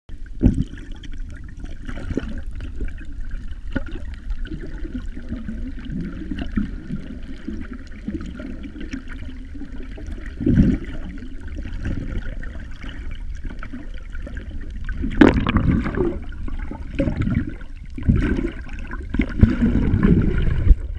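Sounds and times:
muffled underwater water rushing: 0.1s - 20.9s.

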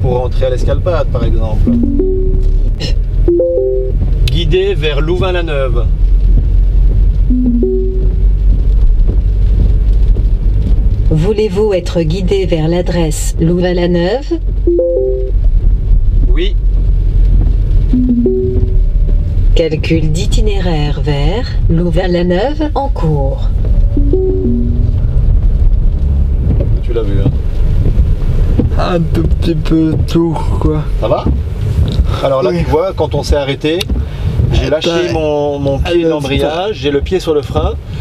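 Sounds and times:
car road and engine rumble: 0.0s - 38.0s
brief electronic beep: 3.3s - 3.9s, 7.3s - 8.2s, 14.7s - 15.3s, 18.0s - 18.8s.

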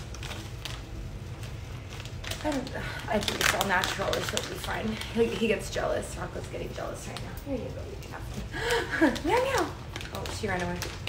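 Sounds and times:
plastic pouch crinkling: 0.0s - 7.4s, 8.6s - 11.0s.

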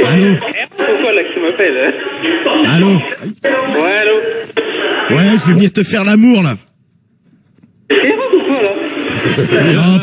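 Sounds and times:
men talking on a phone: 0.0s - 6.6s.

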